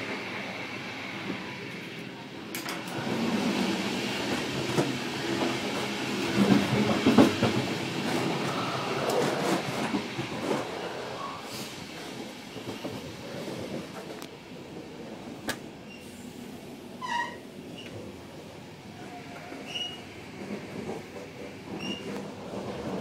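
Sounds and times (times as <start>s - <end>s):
train wheels rumbling on rails: 0.0s - 23.0s.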